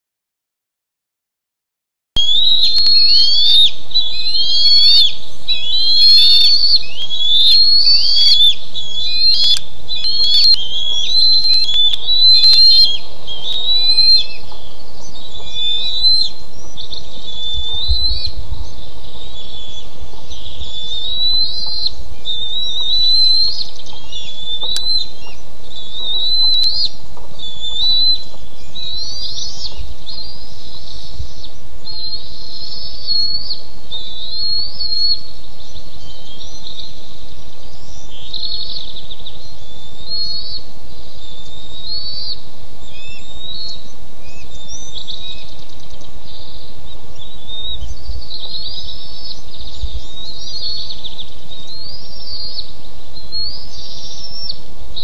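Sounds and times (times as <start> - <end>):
eagles whistling calls: 2.2 - 37.0, 37.8 - 54.6.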